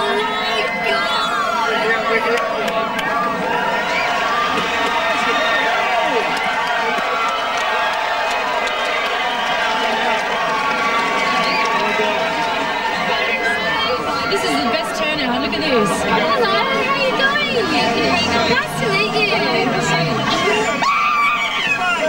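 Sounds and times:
crowd shouting: 0.0 - 22.0.

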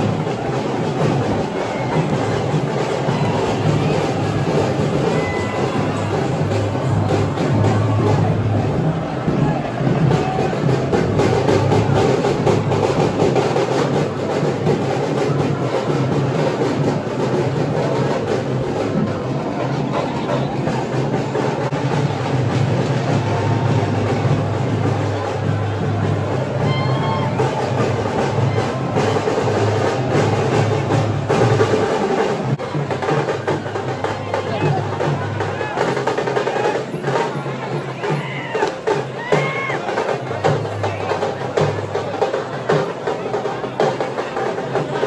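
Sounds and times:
drums beating: 0.0 - 45.0
large crowd: 0.0 - 45.0.

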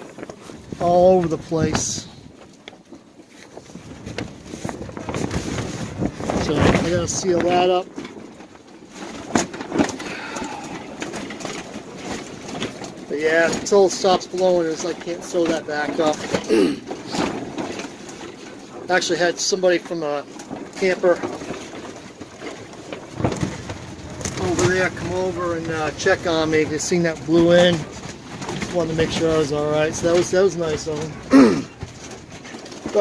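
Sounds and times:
wind buffeting tent canvas: 0.0 - 19.1, 20.2 - 33.0.

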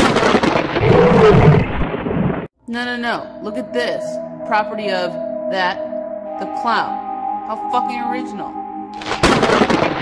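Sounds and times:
lightning crack: 9.0 - 10.0.

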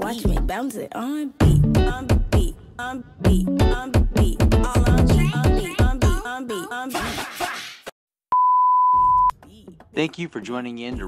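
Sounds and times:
electronic test-tone beep: 8.3 - 9.3.

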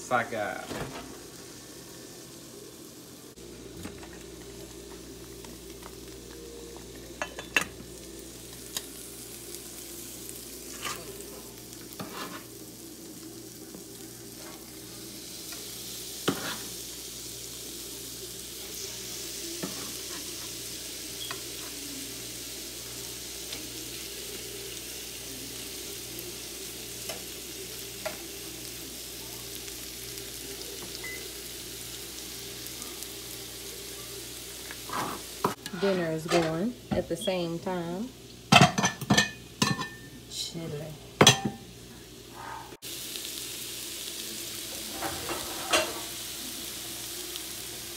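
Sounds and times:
seafood sizzling in oil: 0.0 - 47.9.

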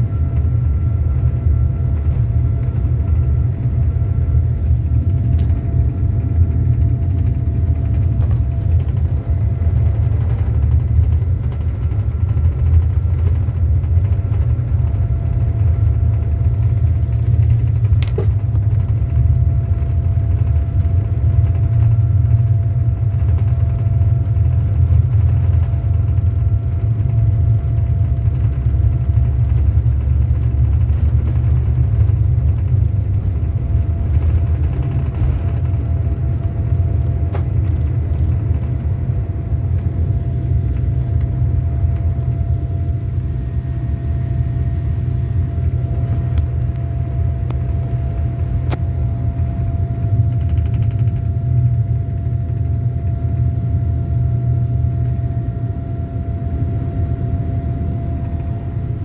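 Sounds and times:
faint engine whine: 0.0 - 59.0
jet engine and wheels rumble: 0.0 - 59.0.

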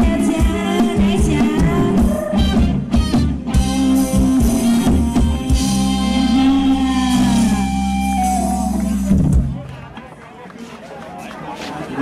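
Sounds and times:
amplified live band music: 0.0 - 9.7.

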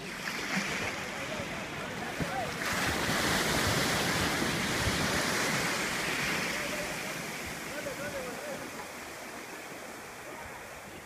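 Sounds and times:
sea surf breaking: 0.0 - 11.0.

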